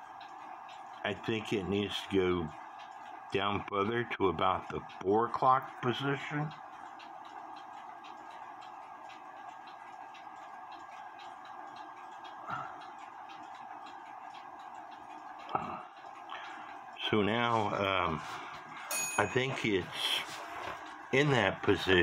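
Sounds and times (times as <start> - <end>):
mechanical clock ticking: 0.0 - 22.0
steady hum: 0.0 - 22.0.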